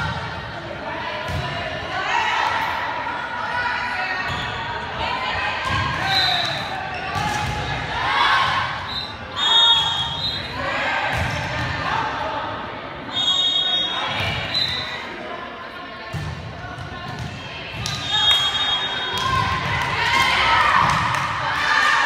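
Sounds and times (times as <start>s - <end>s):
voices echoing in a hall: 0.0s - 22.0s.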